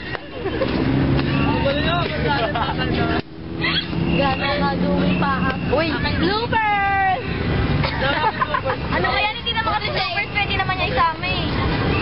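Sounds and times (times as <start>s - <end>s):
road traffic hum: 0.0s - 12.0s
young people talking and laughing: 0.0s - 12.0s.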